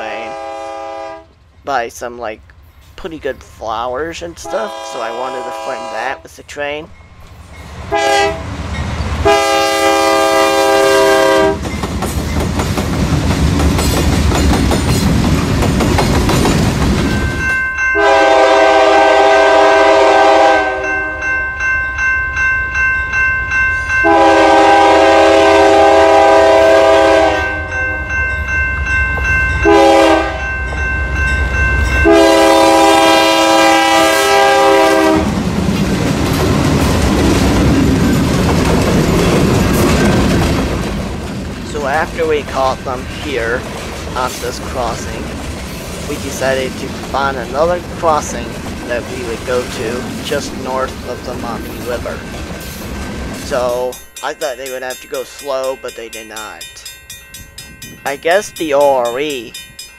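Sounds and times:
locomotive air horn blasts: 0.2s - 1.3s, 4.4s - 6.2s, 7.9s - 8.5s, 9.2s - 11.6s, 18.0s - 21.3s, 24.0s - 27.9s, 29.6s - 30.5s, 32.0s - 35.3s
train wheel clatter: 11.0s - 17.6s, 35.2s - 56.4s
locomotive engine rumble: 34.6s - 59.8s.

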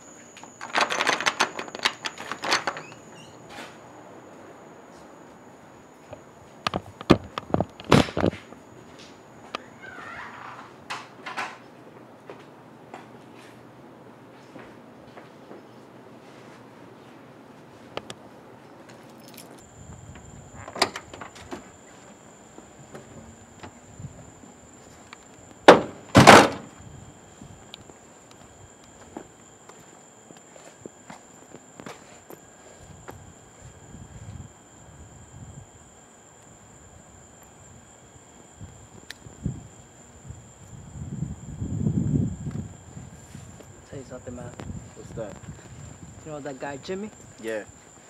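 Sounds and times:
high-pitched insect drone: 0.0s - 11.6s, 19.1s - 48.0s
car doors slamming: 25.6s - 26.7s.

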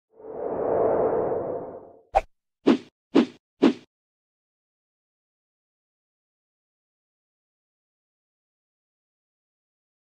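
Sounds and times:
whoosh transition effect: 0.2s - 2.0s.

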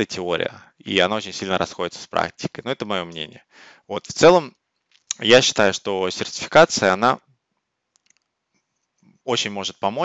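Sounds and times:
man speaking: 0.0s - 4.5s, 5.1s - 7.2s, 9.3s - 10.0s
faint clicks: 7.9s - 9.1s.

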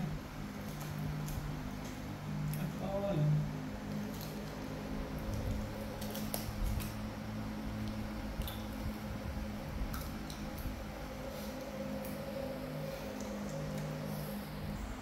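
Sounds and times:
steady low hum: 0.0s - 15.0s
monkeys chewing seed pods: 0.4s - 15.0s.

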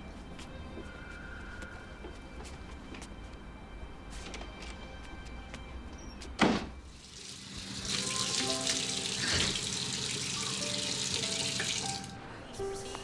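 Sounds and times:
soft background music: 0.0s - 13.0s
water running: 6.9s - 12.2s.

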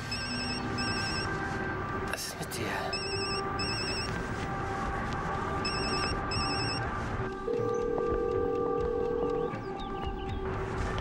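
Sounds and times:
mobile phone ringing: 0.1s - 1.3s, 2.9s - 4.1s, 5.6s - 6.8s, 7.5s - 9.4s.

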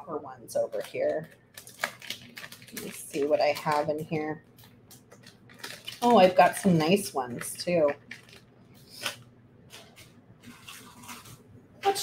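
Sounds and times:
beads clicking and rustling: 0.8s - 11.4s.

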